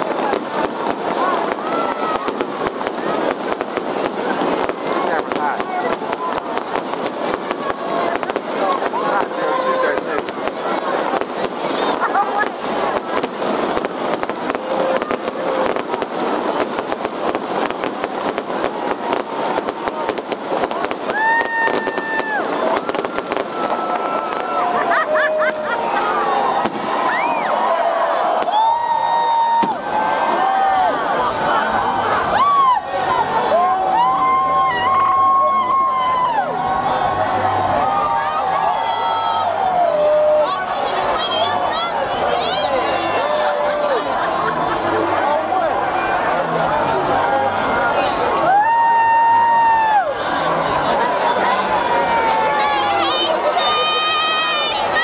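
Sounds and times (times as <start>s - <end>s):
fireworks crackling and popping: 0.0s - 45.2s
crowd shouting and cheering: 0.0s - 55.0s.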